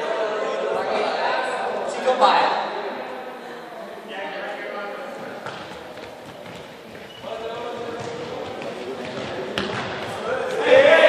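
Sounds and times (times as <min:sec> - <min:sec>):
running footsteps on hall floor: 0:05.0 - 0:10.8.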